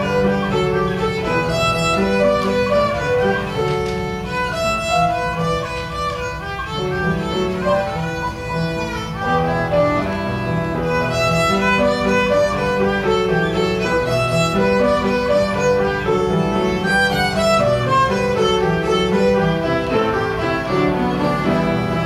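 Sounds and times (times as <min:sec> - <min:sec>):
solo violin playing a jig: 0:00.0 - 0:22.0.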